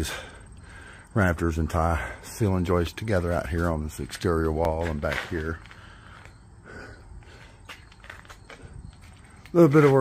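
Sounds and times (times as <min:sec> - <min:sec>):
faint outdoor background noise: 0:00.0 - 0:10.0
light footsteps: 0:03.3 - 0:06.4, 0:07.2 - 0:10.0.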